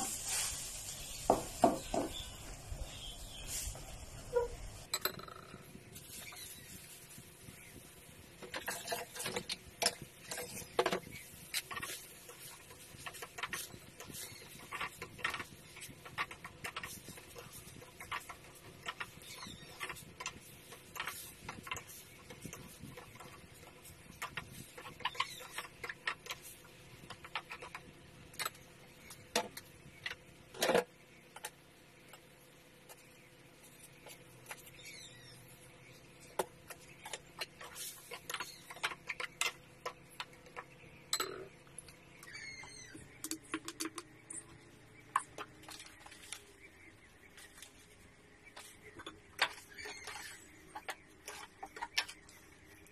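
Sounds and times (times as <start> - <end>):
food stir-frying: 0.0 - 4.0.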